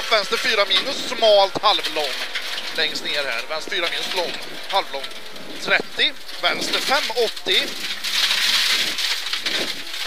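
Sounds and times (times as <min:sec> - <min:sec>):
stones pattering on underbody: 0:00.0 - 0:10.0
tyres hissing on gravel: 0:00.0 - 0:10.0.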